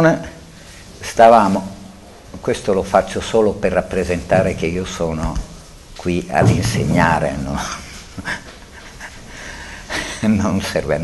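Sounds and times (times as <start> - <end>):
low room noise: 0.0 - 11.0.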